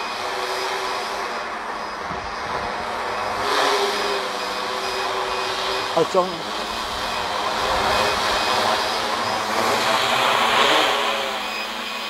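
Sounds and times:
drone propellers buzzing: 0.0s - 12.0s.

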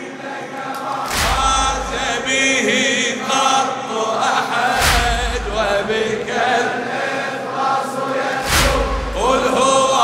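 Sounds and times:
choir chanting: 0.0s - 10.0s.

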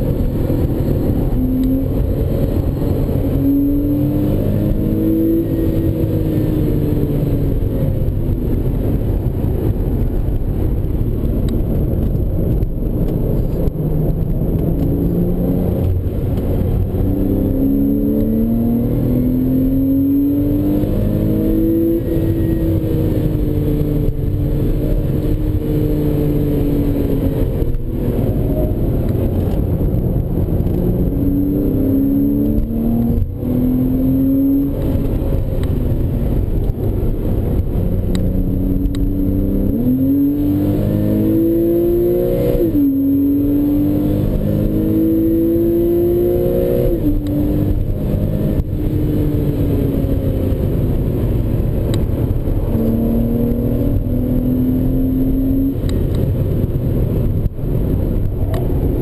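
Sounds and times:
car engine accelerating: 0.0s - 59.0s.

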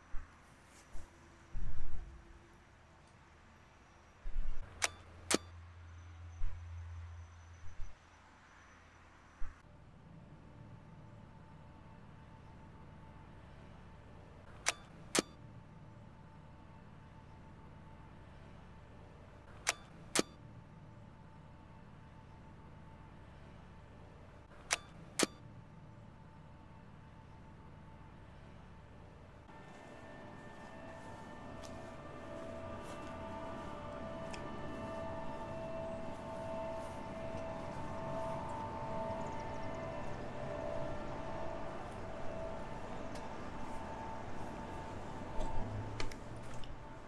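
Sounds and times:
steady low hum: 0.0s - 47.0s
sharp clicks: 14.6s - 15.3s, 19.6s - 20.3s, 24.6s - 25.4s.

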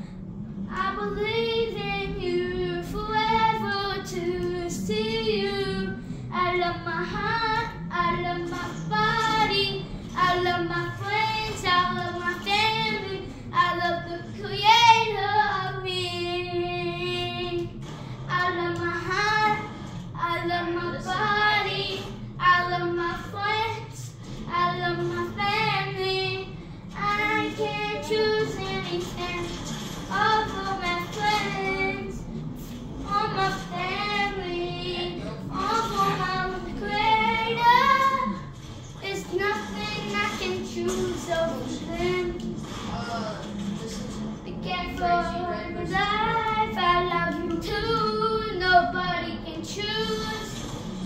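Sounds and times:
child singing: 0.7s - 32.2s, 33.0s - 42.5s, 44.5s - 50.6s.

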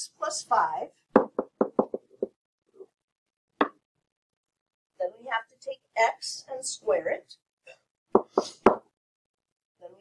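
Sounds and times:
stylus knocking on tablet: 1.1s - 2.4s, 8.2s - 8.9s.

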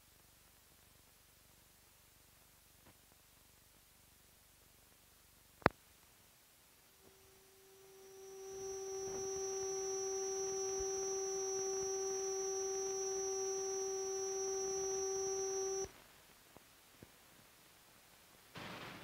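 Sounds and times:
old film soundtrack hiss: 0.0s - 19.0s
steady pitched tone: 7.0s - 15.9s.

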